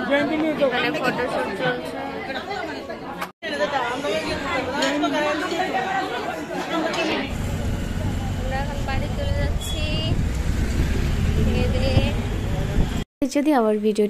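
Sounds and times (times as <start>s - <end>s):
wind: 0.0s - 13.0s
street traffic rumble: 5.7s - 13.1s
people chatting: 8.0s - 10.2s, 11.4s - 12.2s, 13.2s - 14.0s.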